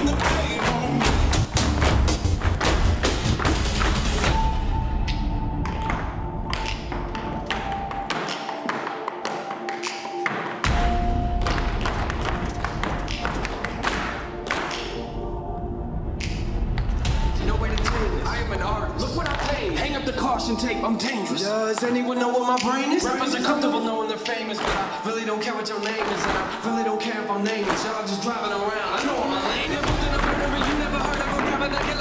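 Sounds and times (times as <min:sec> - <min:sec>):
recorded music track: 0:00.0 - 0:32.0
tap shoes on platforms: 0:24.6 - 0:24.9, 0:25.8 - 0:26.5, 0:27.6 - 0:28.0.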